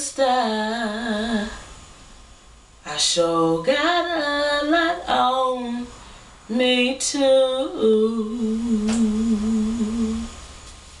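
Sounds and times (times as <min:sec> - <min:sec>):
woman humming: 0:08.4 - 0:10.3.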